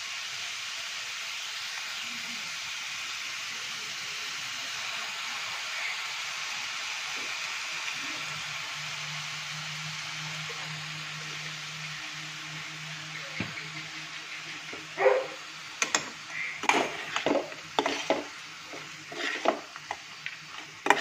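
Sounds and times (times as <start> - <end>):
pork and onions sizzling in a pan: 0.0 - 21.0.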